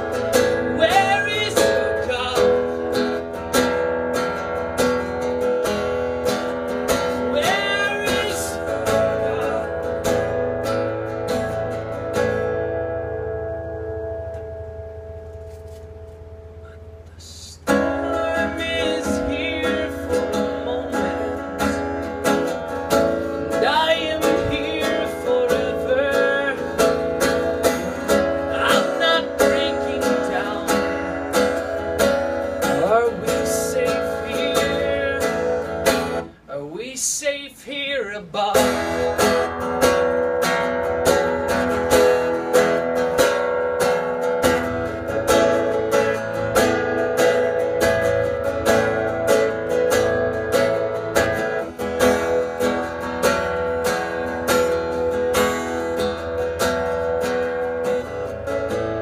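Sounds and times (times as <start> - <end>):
acoustic guitar strumming chords: 0.0 - 59.0.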